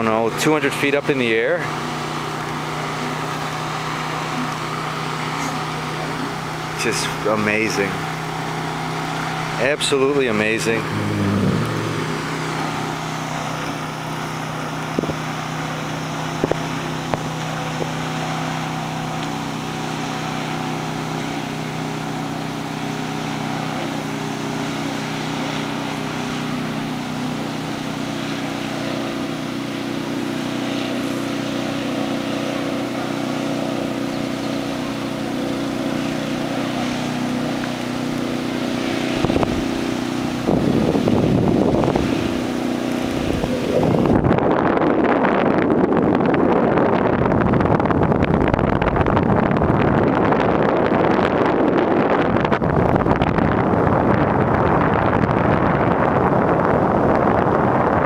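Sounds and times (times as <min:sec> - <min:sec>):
distant motorboat engine droning: 0:00.0 - 0:58.0
wind on microphone: 0:10.5 - 0:14.0, 0:38.7 - 0:58.0.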